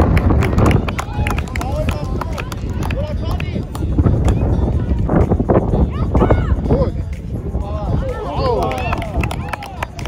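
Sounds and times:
steady low rumble: 0.0s - 10.0s
children calling and shouting: 4.2s - 9.2s.

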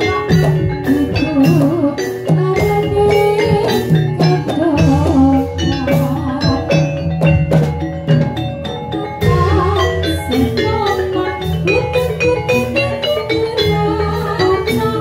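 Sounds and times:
drum strokes: 0.0s - 15.0s
metallophones ringing a melody: 0.0s - 15.0s
wavering melody line: 0.0s - 15.0s.

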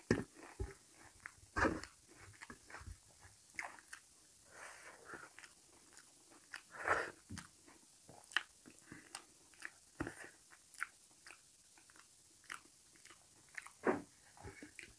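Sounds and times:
person chewing food: 0.0s - 14.9s.

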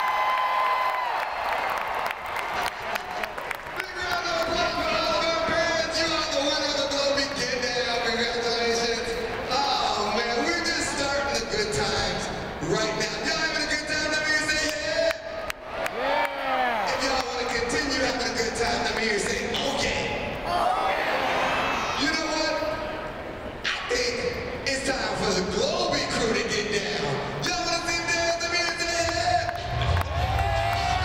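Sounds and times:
crowd noise: 0.0s - 31.0s.

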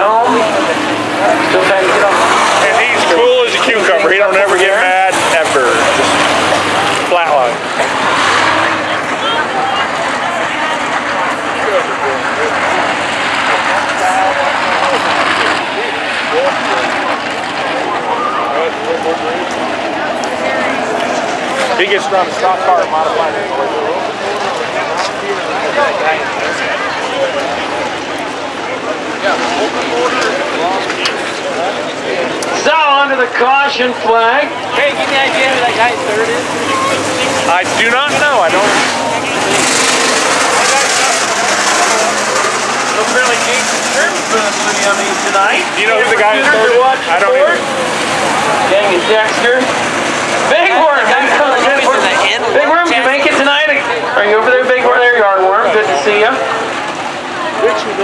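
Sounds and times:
grandstand crowd chatter: 0.0s - 58.0s
race car engines: 0.0s - 58.0s
spectators talking: 0.0s - 58.0s.

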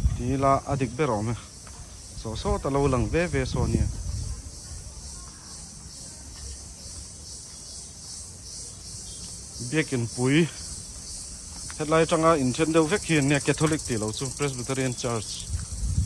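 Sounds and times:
high-pitched insect chorus: 0.0s - 16.0s.

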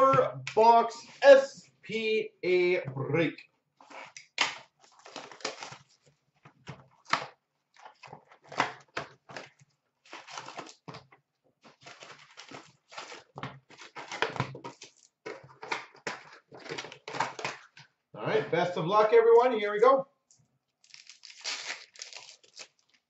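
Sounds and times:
cardboard rustling and scraping: 9.3s - 15.6s.

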